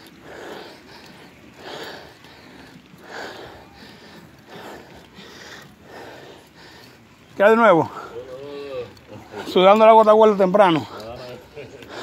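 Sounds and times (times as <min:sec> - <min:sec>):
man breathing hard: 0:00.0 - 0:07.3, 0:10.8 - 0:12.0.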